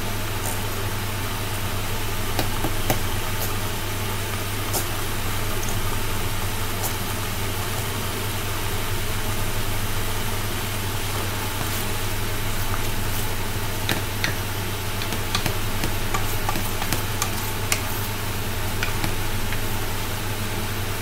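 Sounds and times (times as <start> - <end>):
machine hum with hiss: 0.0 - 21.0.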